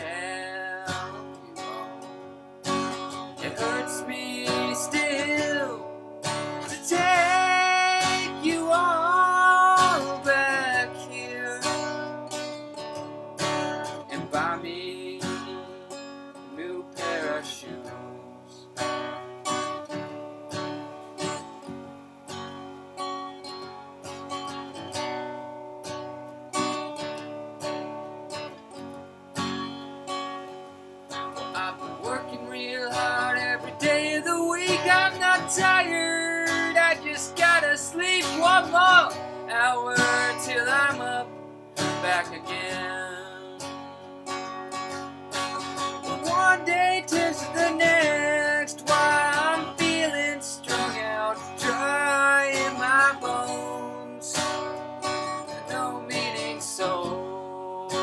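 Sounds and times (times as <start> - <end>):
man singing: 0.0 - 2.2, 2.8 - 12.4, 13.5 - 19.3, 31.3 - 43.8, 45.6 - 58.0
acoustic guitar strummed: 0.0 - 58.0.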